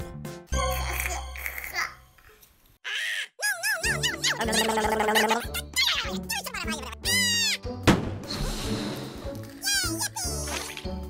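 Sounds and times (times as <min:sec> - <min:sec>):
squeaky voice-like squeal: 0:02.9 - 0:06.1
light background music: 0:03.7 - 0:11.0.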